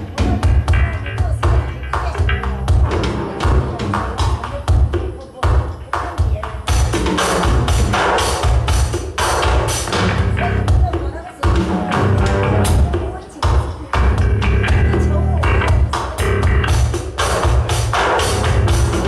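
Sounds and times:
deep bass lines: 0.0 - 4.4, 7.4 - 8.6, 9.8 - 10.9, 11.5 - 13.0, 14.0 - 19.0
drum kits hitting hard: 0.0 - 19.0
touch guitar: 9.9 - 17.6.

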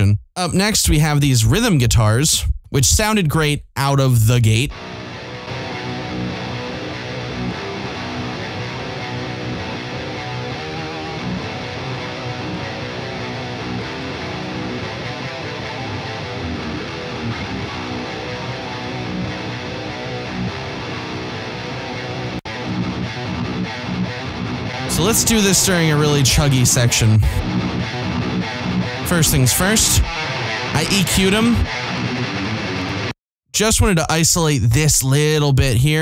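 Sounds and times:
distorted electric guitars metal riff: 4.7 - 33.7.

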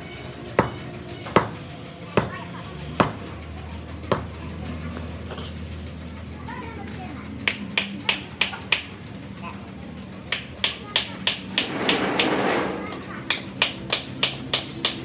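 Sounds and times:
hammer tapping on steel: 0.6 - 1.6, 3.0 - 3.3, 7.4 - 9.0, 10.3 - 12.3, 13.3 - 15.0
rasping scrape: 11.6 - 12.9.

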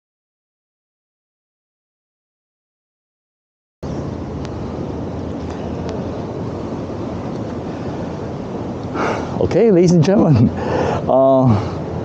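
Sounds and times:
road traffic: 3.8 - 12.0
wind rumbling on microphone: 3.8 - 12.0.

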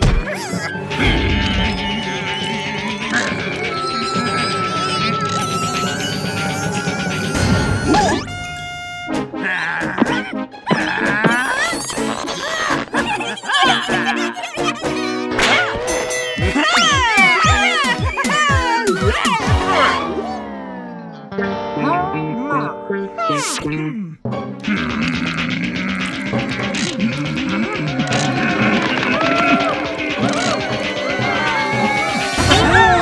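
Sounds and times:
strained whining vocal noises: 0.0 - 8.3, 9.4 - 20.6, 23.2 - 33.0
cartoon background music: 0.0 - 33.0
cartoon character wailing: 9.4 - 15.8, 16.4 - 20.4.

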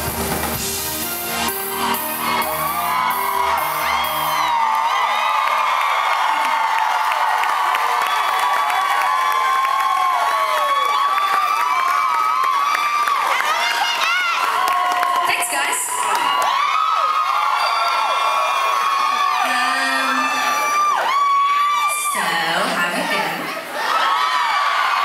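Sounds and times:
band playing: 0.0 - 4.8
crowd cheering and screaming: 0.0 - 25.0.

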